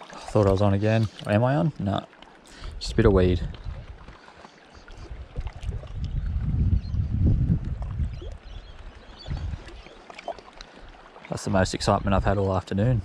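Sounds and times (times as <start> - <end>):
wind buffeting microphone: 2.6 - 4.2, 5.0 - 9.9
small waves lapping on rocks: 7.8 - 12.8.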